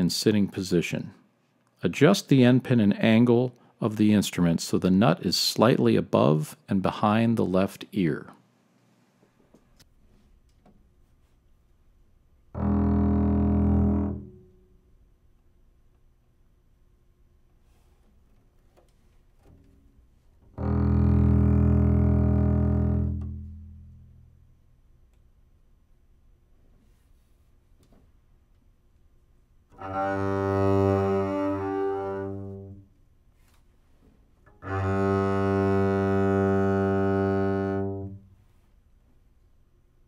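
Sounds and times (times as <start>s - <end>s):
bowed double bass note: 12.5s - 14.6s, 20.5s - 24.5s, 29.8s - 32.9s, 34.6s - 38.3s.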